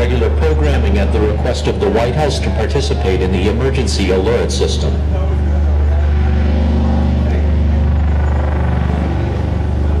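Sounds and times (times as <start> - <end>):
loud low drone over speakers: 0.0 - 10.0.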